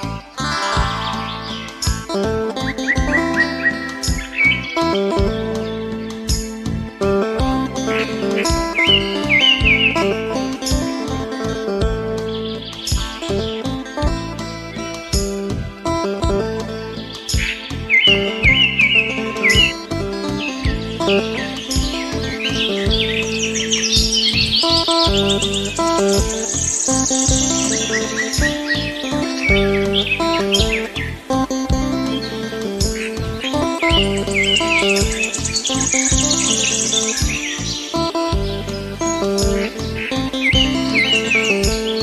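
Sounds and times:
birds chirping and trilling: 0.0 - 42.0
instrumental background music: 0.0 - 42.0.

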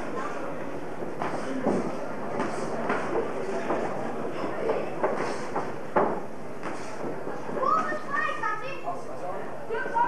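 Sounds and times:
background murmur: 0.0 - 10.0.

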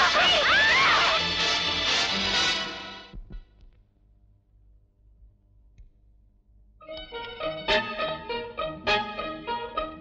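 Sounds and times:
background music: 0.0 - 3.2, 6.8 - 10.0.

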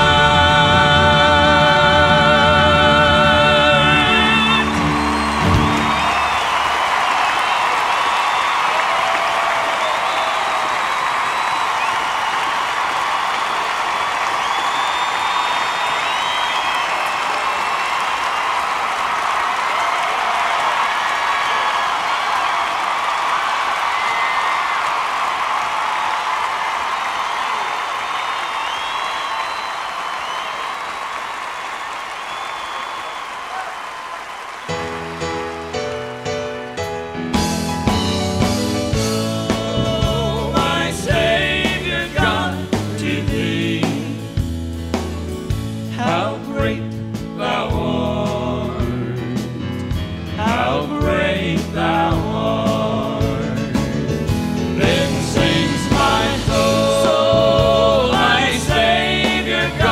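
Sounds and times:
audience applauding and cheering: 0.0 - 44.2, 54.8 - 59.9
band playing with drums: 3.9 - 6.2, 37.4 - 59.9
whistles: 4.4 - 18.5, 27.2 - 34.7.

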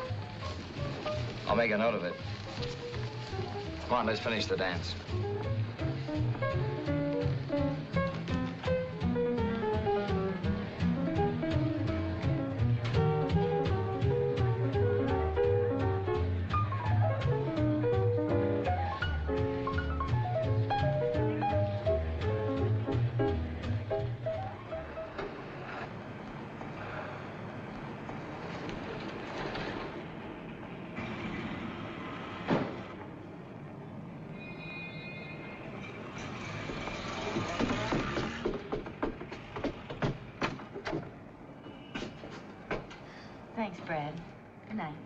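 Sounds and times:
jazz dance band music: 0.0 - 25.8.

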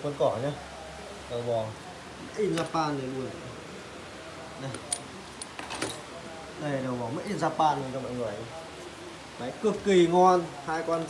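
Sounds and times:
metallic clicks and clinks: 4.7 - 6.1.

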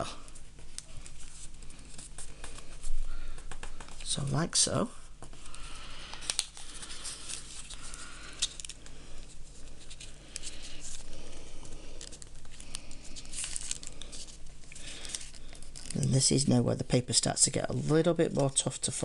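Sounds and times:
paper rustling and crinkling: 5.2 - 16.6.

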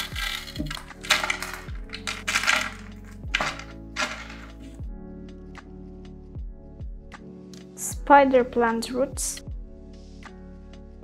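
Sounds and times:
granules clattering on glass: 0.0 - 4.6
background music: 0.0 - 11.0.

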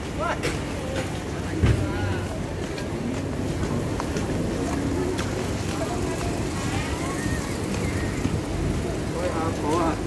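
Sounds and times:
indistinct chatter: 0.0 - 10.0
street hum: 0.0 - 10.0.

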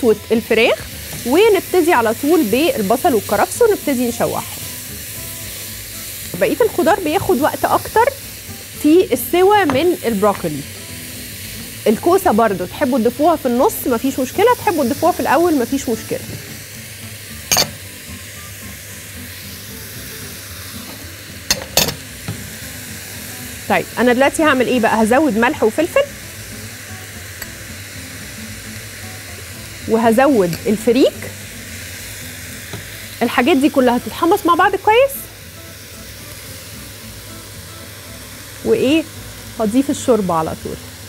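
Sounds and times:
faint background music: 0.0 - 41.0
food sizzling in a pot: 0.0 - 41.0
sharp knocks against a pot: 17.5 - 17.8, 20.9 - 22.5.

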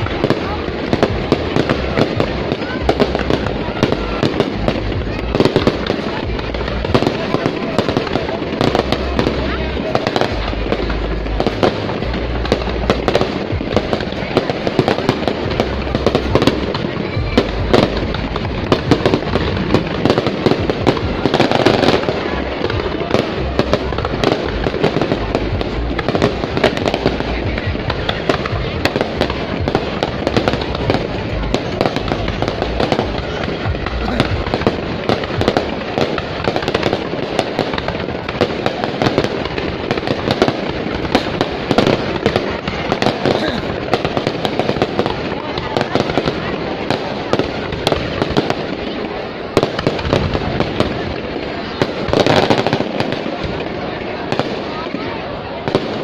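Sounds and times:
fireworks bangs and crackles: 0.0 - 56.0.

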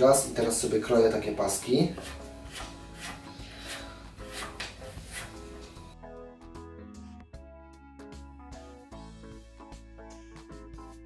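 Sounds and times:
background music: 0.0 - 11.0
knife chopping on wooden board: 1.9 - 5.7.

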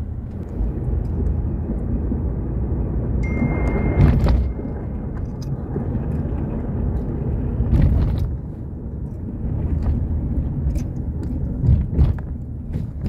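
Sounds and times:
car road noise rumble: 0.0 - 13.0.

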